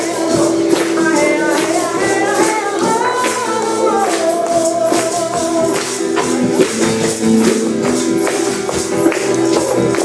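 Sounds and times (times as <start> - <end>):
hand percussion and jingles: 0.0 - 10.0
strummed acoustic guitar: 0.0 - 10.0.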